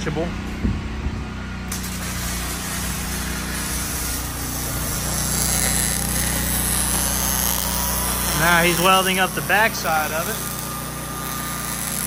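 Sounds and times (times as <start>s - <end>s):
low machine hum: 0.0s - 12.0s
welder arc crackling and hissing: 1.7s - 12.0s.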